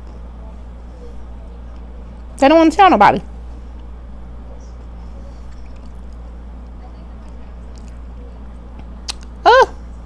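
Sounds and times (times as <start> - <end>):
low electrical hum: 0.0 - 10.0
soft chewing with mouth clicks: 5.4 - 6.3, 7.2 - 8.2.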